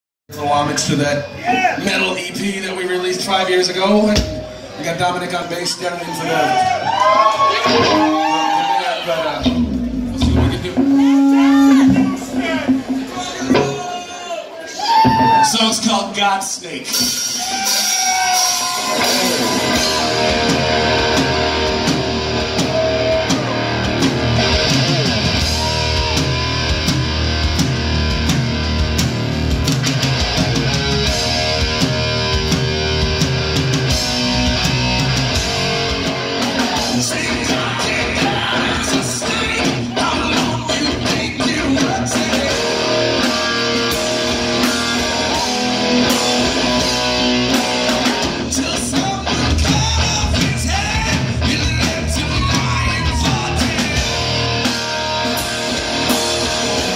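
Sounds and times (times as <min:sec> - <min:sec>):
drum kit: 0:04.0 - 0:04.6, 0:09.4 - 0:56.9
electric guitar: 0:06.6 - 0:13.9, 0:16.9 - 0:56.9
electric bass: 0:09.3 - 0:13.8, 0:18.6 - 0:56.9.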